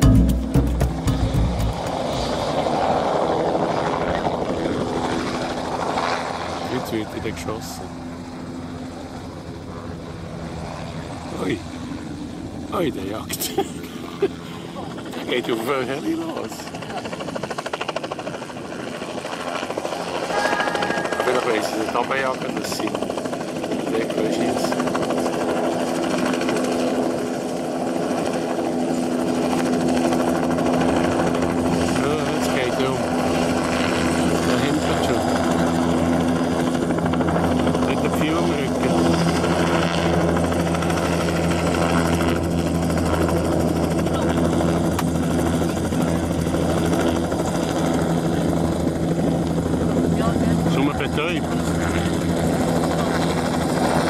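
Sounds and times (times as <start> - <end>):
helicopter rotor and turbine drone: 0.0 - 54.0.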